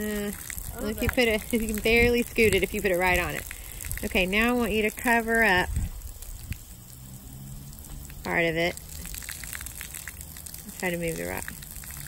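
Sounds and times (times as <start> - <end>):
hose water spattering on concrete: 0.0 - 12.0.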